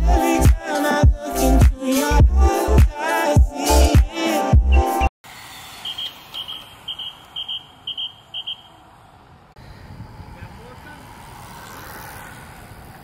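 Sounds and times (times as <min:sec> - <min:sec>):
outdoor road ambience: 0:04.6 - 0:13.0.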